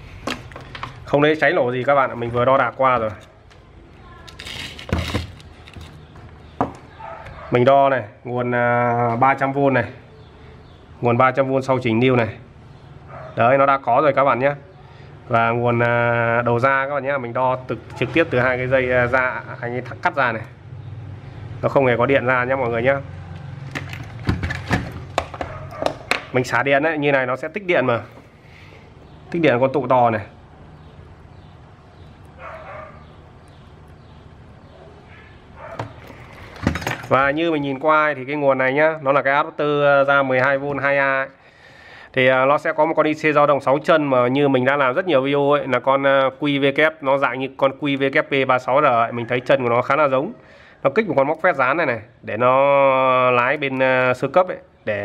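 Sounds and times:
multimeter handling rustle: 4.2 - 6.1
dog barking: 6.9 - 7.6, 13.0 - 13.4, 25.4 - 26.1, 32.4 - 33.1, 34.7 - 36.0.

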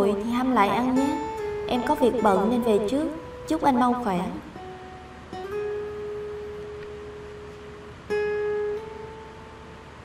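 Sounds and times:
guitar note ringing: 0.0 - 10.0.

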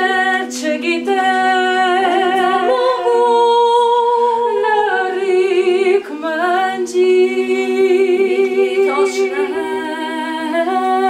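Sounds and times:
women singing in harmony: 0.0 - 11.0.

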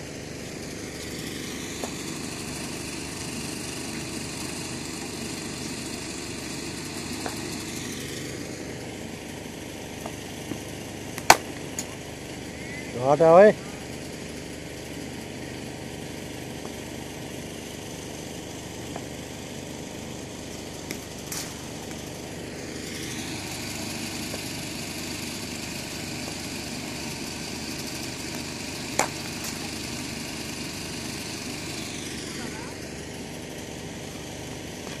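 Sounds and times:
steady background hum: 0.0 - 35.0.

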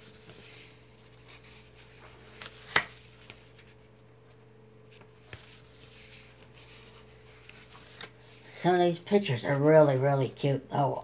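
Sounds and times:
paper rustling: 0.0 - 4.0, 4.9 - 8.4.

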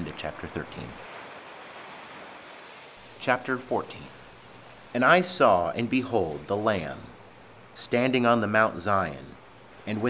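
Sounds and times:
gentle surf on sandy beach: 0.0 - 10.0.

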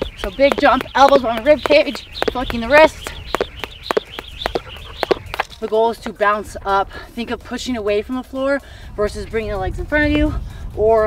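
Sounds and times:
jump rope ticking on ground: 0.0 - 6.3.

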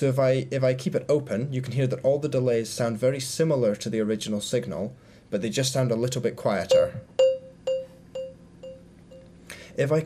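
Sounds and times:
echoing marimba note: 6.7 - 8.9.

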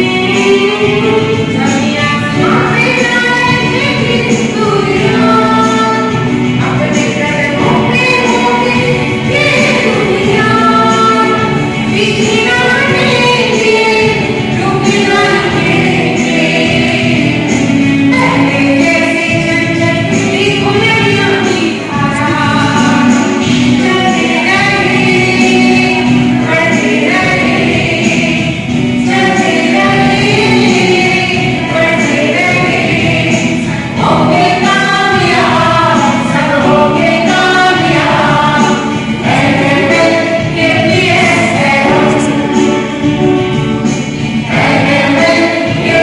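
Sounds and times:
children singing in chorus: 0.0 - 46.0.

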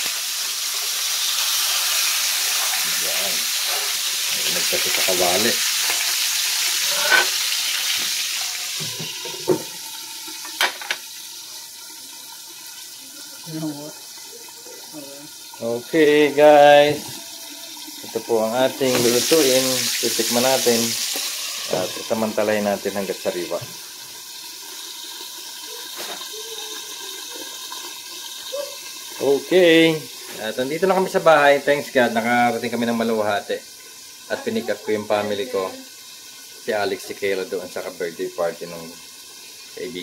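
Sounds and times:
fish frying in oil: 0.0 - 40.0.

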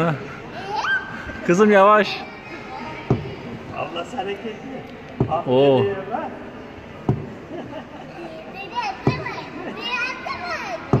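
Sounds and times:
children squealing at play: 0.6 - 1.4
sharp knocks: 3.0 - 3.4, 7.0 - 7.4.

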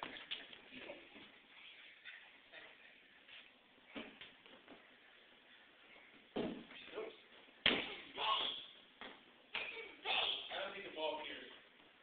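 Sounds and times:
exercise ball thudding: 6.3 - 6.7.

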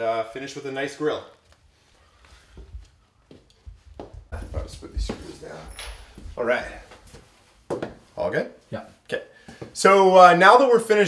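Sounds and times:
footsteps on concrete floor: 1.3 - 8.1, 9.4 - 9.8
faint knocks and bumps: 2.5 - 8.1.

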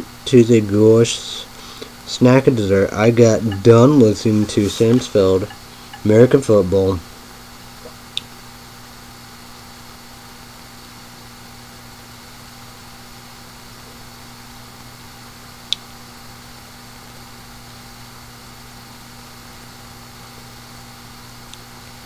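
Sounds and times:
low hum and hiss: 0.0 - 22.0.

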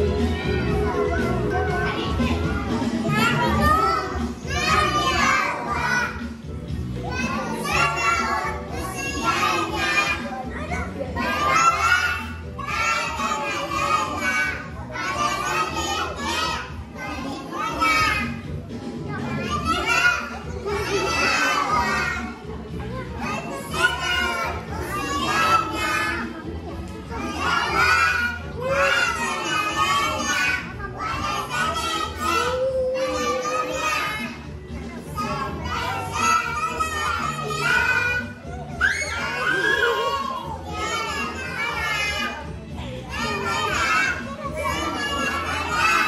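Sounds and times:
children singing together: 0.0 - 46.0.

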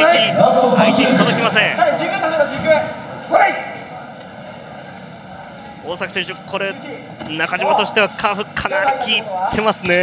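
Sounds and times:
commentator speaking: 0.0 - 3.0
arena background noise: 0.0 - 10.0.

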